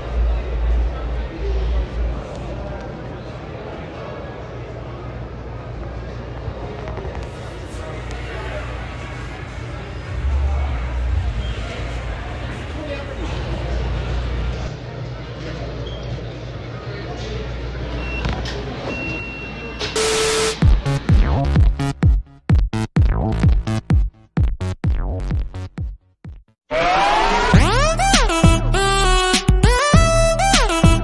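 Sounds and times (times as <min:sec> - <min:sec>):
store background rumble: 0:00.0 - 0:18.8
low hum: 0:08.6 - 0:14.7
loud burst of noise: 0:08.8 - 0:12.8
electronic dance music: 0:20.0 - 0:26.0, 0:26.8 - 0:31.0.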